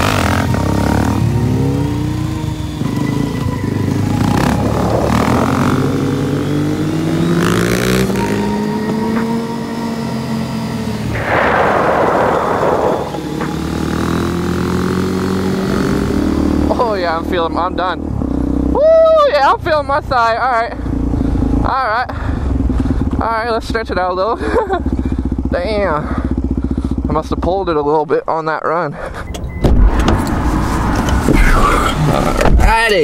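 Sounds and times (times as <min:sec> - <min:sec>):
motorcycle engine revving: 0:00.0 - 0:18.8, 0:20.2 - 0:27.4.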